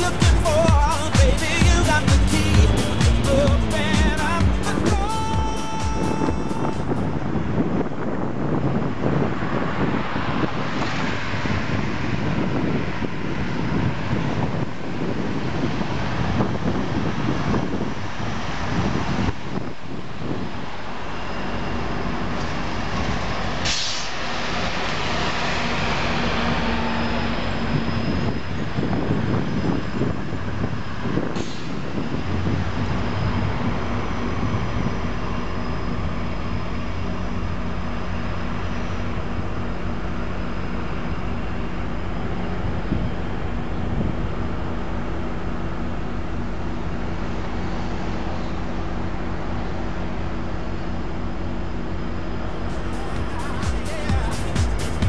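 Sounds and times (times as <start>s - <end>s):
diesel locomotive engine hum: 0.0s - 55.0s
air brake hisses: 23.6s - 24.2s, 31.4s - 31.9s.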